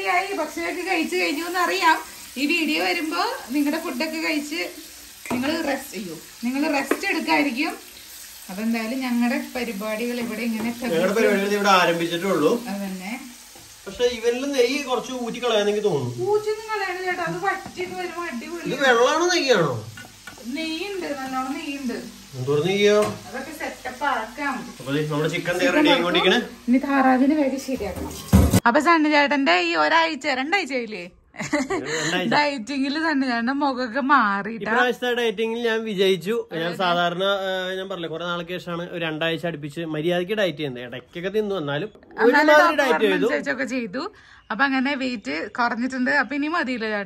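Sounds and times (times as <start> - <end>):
chicken sizzling in oil: 0.0 - 28.6
person talking: 31.7 - 32.6, 42.1 - 43.4.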